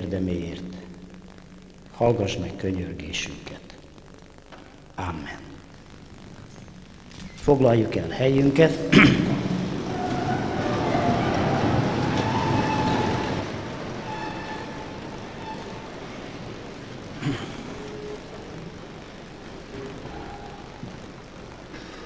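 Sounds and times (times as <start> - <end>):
audience rustling and shuffling: 0.0 - 22.0.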